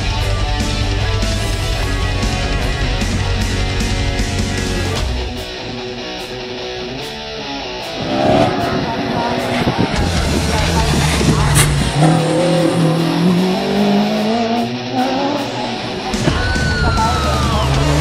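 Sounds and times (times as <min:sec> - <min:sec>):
heavy metal guitar music: 0:00.0 - 0:18.0
race car engine revving: 0:07.8 - 0:18.0.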